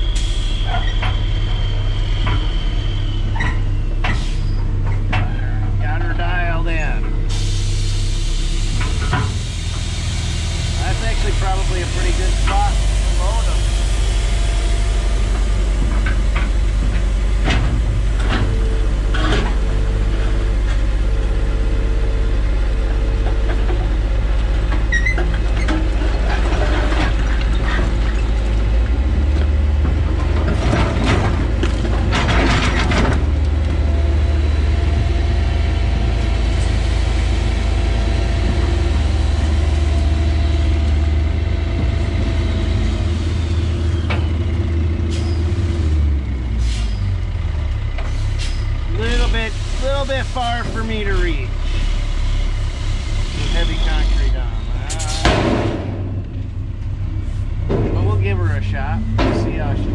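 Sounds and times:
dump truck working: 0.0 - 59.9
excavator diesel engine running: 0.0 - 59.9
air brake hiss: 4.1 - 4.6, 7.3 - 10.6, 46.6 - 47.1, 48.1 - 48.7.

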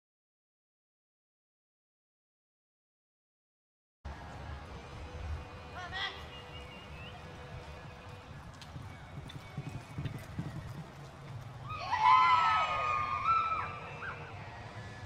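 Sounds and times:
hoof thuds in dirt: 6.4 - 11.6.

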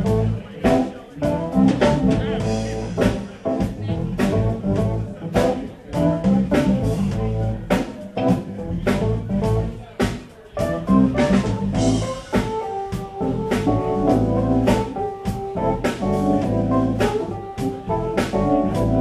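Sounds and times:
bass: 0.0 - 19.0
drum kit: 0.0 - 19.0
keyboards: 0.0 - 19.0.

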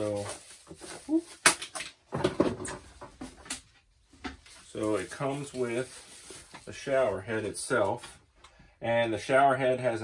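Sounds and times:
cardboard and plastic rustling: 0.0 - 8.3.

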